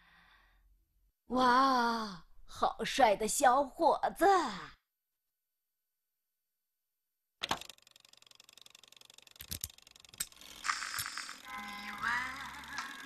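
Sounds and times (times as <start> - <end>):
record surface crackle: 10.5 - 13.0.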